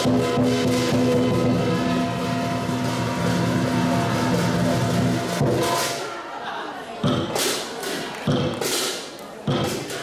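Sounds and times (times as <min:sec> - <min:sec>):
gong stroke: 0:00.0 - 0:05.4
cymbal crash: 0:00.0 - 0:06.1.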